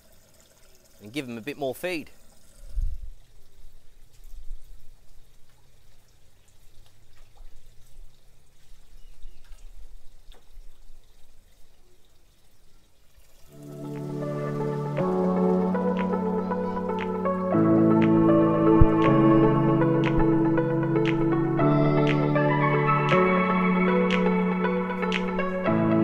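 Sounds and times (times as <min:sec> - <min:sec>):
water trickling and dripping: 0:00.0 - 0:26.0
background music: 0:13.5 - 0:26.0.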